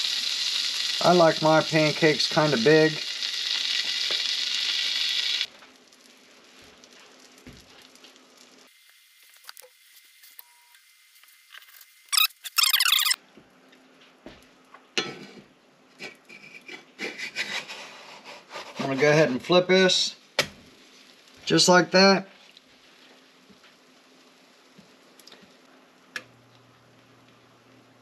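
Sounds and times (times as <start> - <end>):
batter sizzling in butter: 0.0 - 12.7, 19.9 - 26.0
short high squeal: 12.1 - 13.2.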